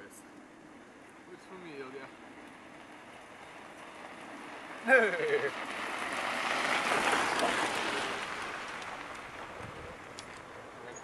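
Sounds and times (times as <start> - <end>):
bicycle tyres crunching on snow: 1.4 - 11.0.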